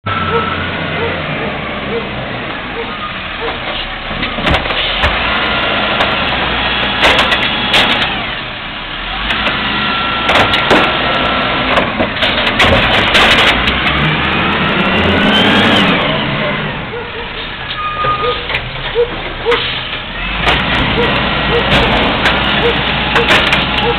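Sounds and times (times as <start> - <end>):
cart clanking and banging: 0.1 - 8.5, 9.1 - 23.9
garbage truck engine revving: 0.1 - 23.9.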